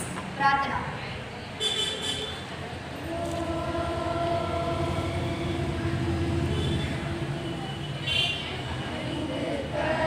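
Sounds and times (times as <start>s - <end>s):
voices holding a long note: 3.0s - 10.0s.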